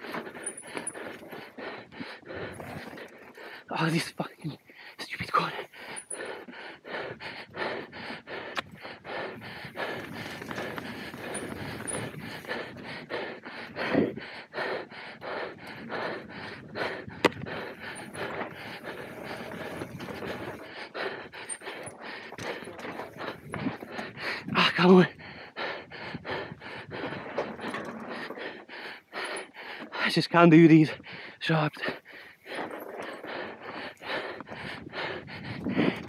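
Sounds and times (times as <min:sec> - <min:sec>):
rider panting: 0:00.0 - 0:36.0
bike tyres on dirt: 0:08.7 - 0:14.1, 0:15.7 - 0:24.8.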